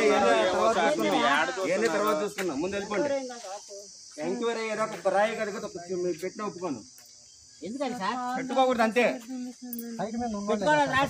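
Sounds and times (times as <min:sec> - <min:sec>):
people talking: 0:00.0 - 0:06.8, 0:07.6 - 0:11.0
high-pitched insect drone: 0:00.0 - 0:11.0.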